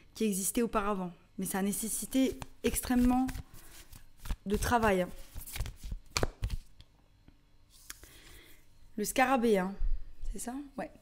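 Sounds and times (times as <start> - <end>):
cards snapping and tapping: 2.3 - 6.9.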